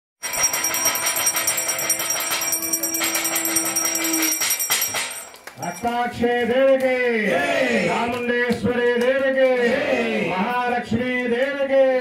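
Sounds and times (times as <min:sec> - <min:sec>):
brass plate ringing rapidly: 0:00.2 - 0:05.9
brass bells ringing: 0:00.2 - 0:06.8.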